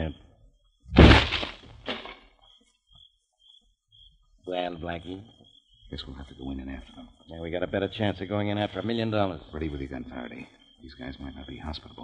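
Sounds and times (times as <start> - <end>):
faint scattered noises: 0.0 - 12.0
door crash clatter: 1.0 - 2.2.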